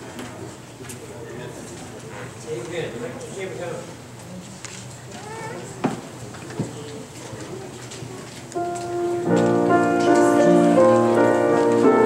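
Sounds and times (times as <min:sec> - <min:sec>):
piano playing chords: 0:08.6 - 0:12.0.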